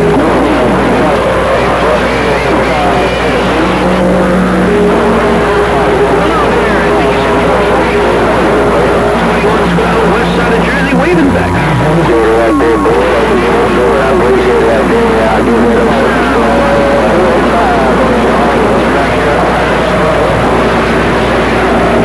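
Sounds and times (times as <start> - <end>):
garbled radio voices: 0.0 - 22.0
radio static: 0.0 - 22.0.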